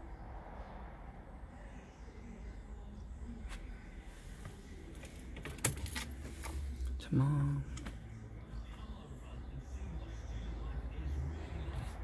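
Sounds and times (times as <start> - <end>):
car keys jingling: 5.0 - 6.5.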